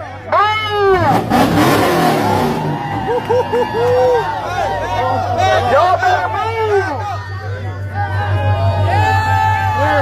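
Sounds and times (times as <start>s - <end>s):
crowd voices: 0.0s - 10.0s
car engine revving: 0.6s - 4.8s.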